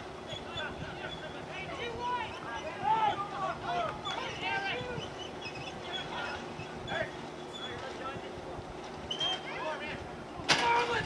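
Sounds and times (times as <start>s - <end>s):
voices calling out: 0.0s - 11.0s.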